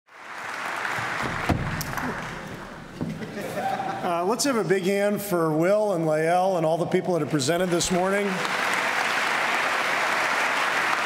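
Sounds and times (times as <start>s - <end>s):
audience applauding: 0.1s - 2.8s, 7.6s - 11.0s.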